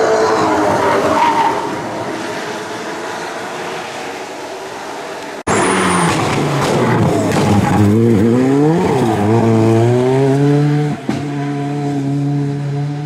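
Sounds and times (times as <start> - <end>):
rally car engine accelerating: 5.5 - 13.0.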